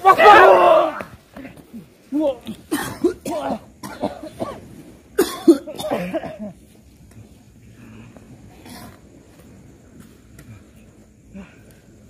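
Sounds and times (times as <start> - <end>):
man coughing and heaving: 2.5 - 6.6.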